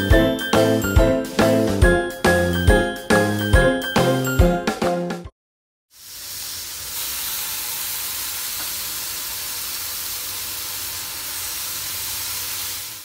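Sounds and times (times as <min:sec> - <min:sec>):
bacon sizzling in a pan: 0:05.9 - 0:13.0.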